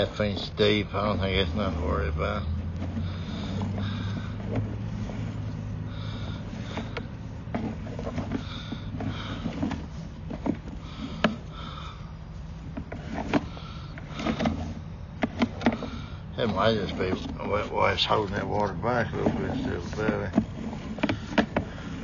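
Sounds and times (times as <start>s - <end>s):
low machine hum: 0.0s - 22.0s
cable and reel clicks and knocks: 12.6s - 22.0s.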